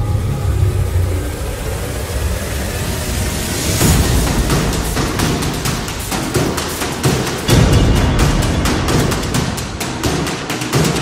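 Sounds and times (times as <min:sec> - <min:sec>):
deep rumbling drone: 0:00.0 - 0:10.0
sharp hit: 0:00.0 - 0:11.0.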